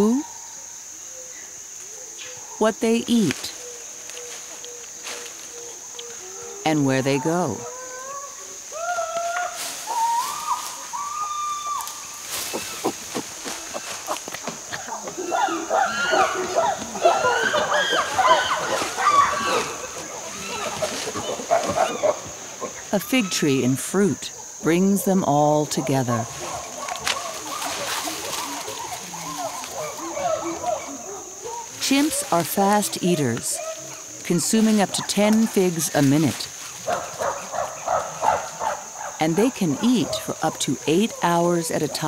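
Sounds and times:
insect buzz: 0.0s - 42.0s
chimpanzee calls: 3.5s - 23.6s, 25.7s - 34.2s.

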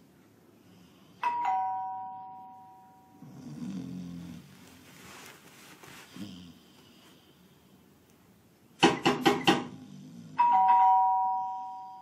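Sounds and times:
two-tone doorbell chime: 1.2s - 3.3s, 10.4s - 12.0s
man snoring: 3.2s - 4.5s, 9.7s - 10.4s.

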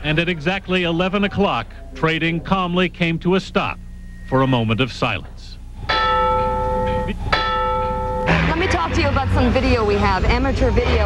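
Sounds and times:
bell ringing: 5.8s - 9.8s.

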